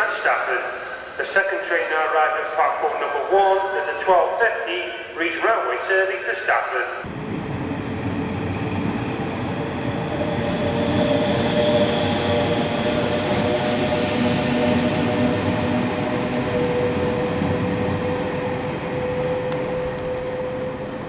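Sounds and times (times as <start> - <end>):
steady train hum: 0.0 - 5.7, 6.7 - 21.0
train wheels rumbling on rail: 7.0 - 21.0.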